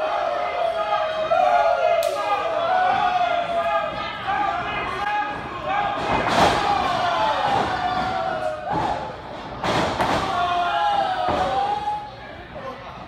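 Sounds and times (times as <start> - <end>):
voices shouting in hall: 0.0 - 9.3, 10.0 - 12.8
impacts in wrestling ring: 5.2 - 12.0.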